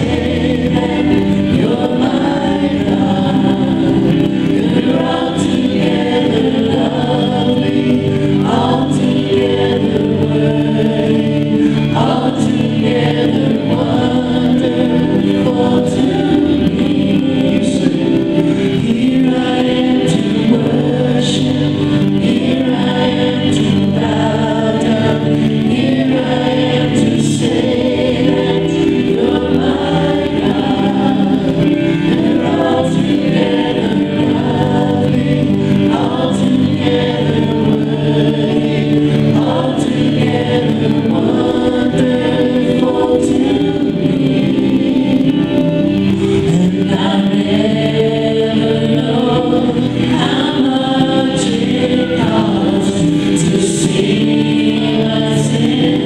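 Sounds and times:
electronic keyboard: 0.0s - 56.0s
group singing together: 0.0s - 56.0s
strummed acoustic guitar: 0.0s - 56.0s.

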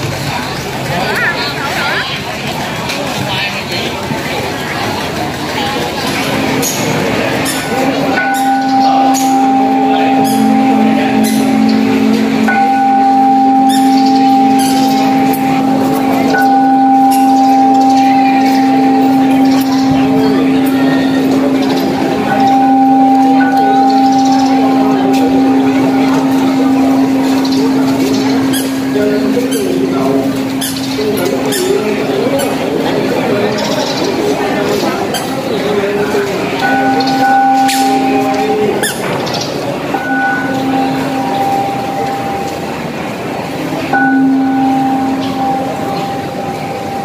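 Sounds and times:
congregation chanting prayers: 5.2s - 47.0s
steady low tone: 5.2s - 47.0s.

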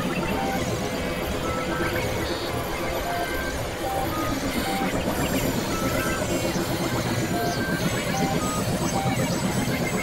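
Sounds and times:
dense experimental noise music: 0.0s - 10.0s.

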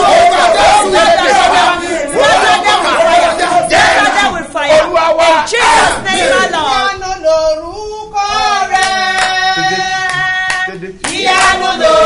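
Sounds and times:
worship singing: 0.0s - 12.0s
hands clapping: 8.8s - 9.4s, 10.0s - 11.7s.

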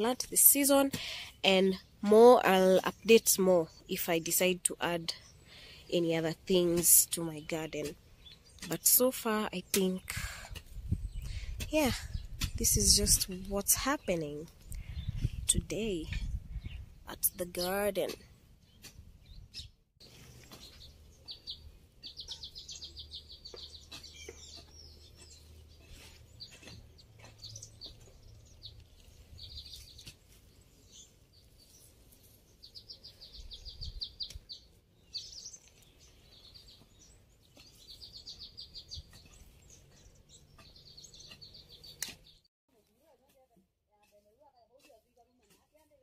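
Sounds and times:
birds chirping: 0.0s - 42.5s
bird trill: 20.6s - 26.7s.

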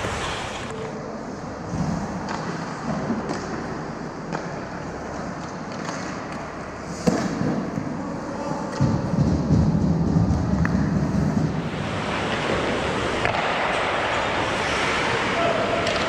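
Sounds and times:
skate blades scraping ice: 0.0s - 0.8s, 11.0s - 16.0s
rumble of players moving: 0.0s - 16.0s
puck crack: 1.7s - 16.0s.

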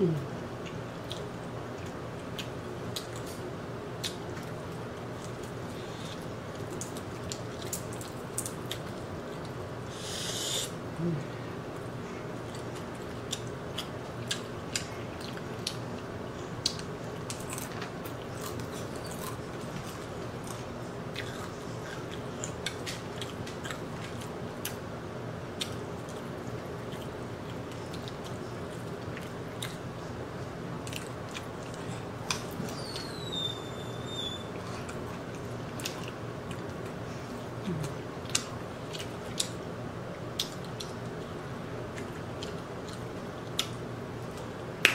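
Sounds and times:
air conditioner hum: 0.0s - 44.9s
tearing meat and chewing: 16.6s - 24.8s.

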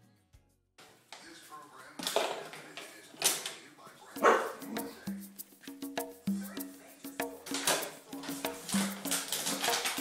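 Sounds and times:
dog barking: 4.2s - 5.0s.

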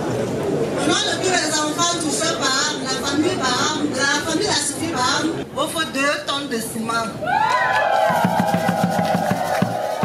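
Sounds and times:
drums beating fast rhythm: 8.0s - 10.0s.

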